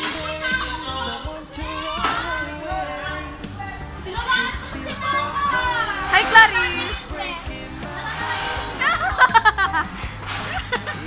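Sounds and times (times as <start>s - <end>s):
young people chattering: 0.0s - 9.9s.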